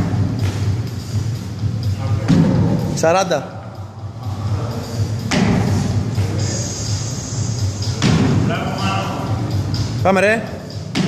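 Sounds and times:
faint music: 0:00.0 - 0:11.0
low gym background noise: 0:00.0 - 0:11.0
heavy thuds: 0:02.1 - 0:03.0, 0:05.0 - 0:06.4, 0:07.8 - 0:08.7.

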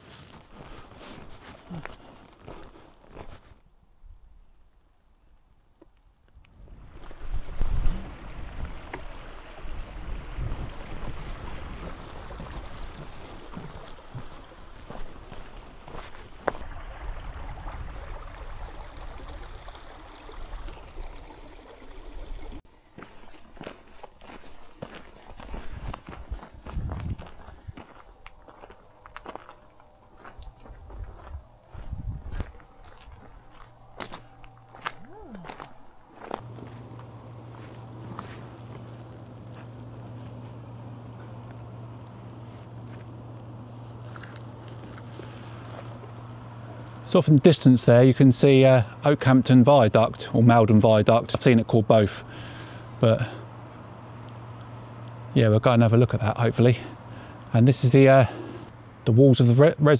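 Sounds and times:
footsteps on gravel: 0:00.0 - 0:03.6, 0:10.9 - 0:16.7, 0:22.9 - 0:47.8
wind gusting on microphone: 0:06.6 - 0:13.7, 0:25.7 - 0:27.8, 0:30.8 - 0:33.2
stream running over rocks: 0:06.8 - 0:22.6.

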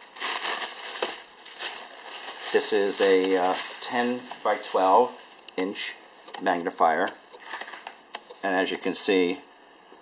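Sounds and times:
thin sheet rustling and crinkling: 0:00.0 - 0:05.4.

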